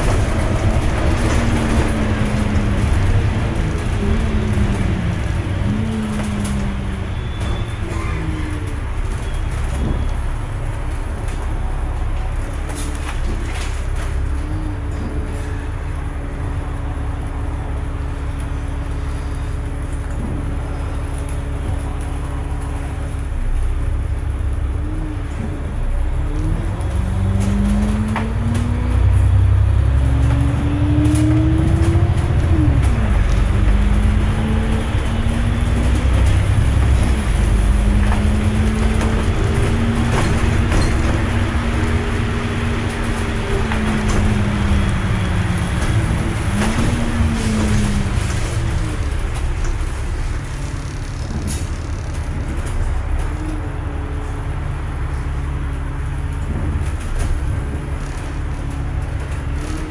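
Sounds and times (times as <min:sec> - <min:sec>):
bus diesel engine: 0:00.0 - 0:59.9.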